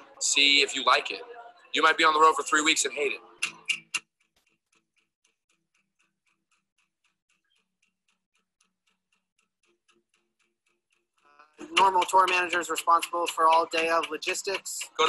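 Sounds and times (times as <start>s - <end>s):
man speaking: 0.2s - 1.2s, 1.8s - 3.2s
faint clock-like ticking: 1.8s - 15.0s.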